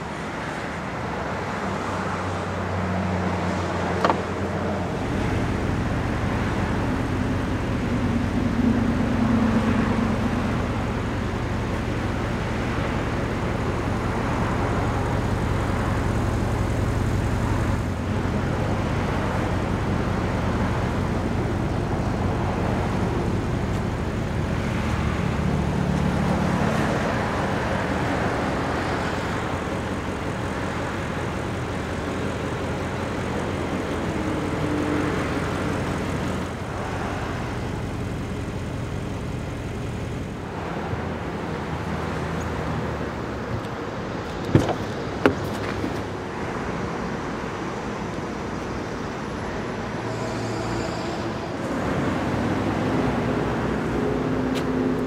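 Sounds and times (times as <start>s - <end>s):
vehicle rumble: 0.0s - 55.0s.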